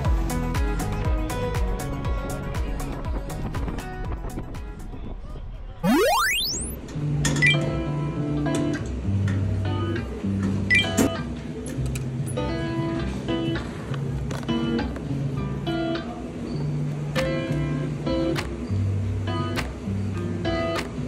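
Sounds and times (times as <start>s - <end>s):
rising sweep effect: 5.8s - 6.8s.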